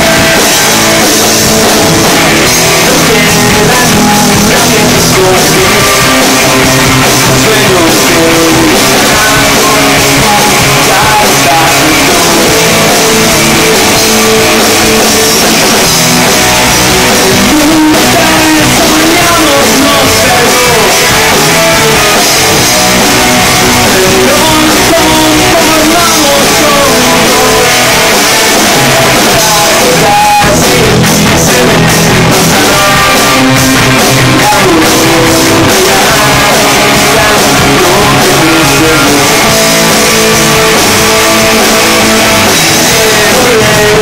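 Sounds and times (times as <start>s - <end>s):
man singing: 0.0s - 16.0s, 16.6s - 44.0s
rock band playing live: 0.0s - 44.0s.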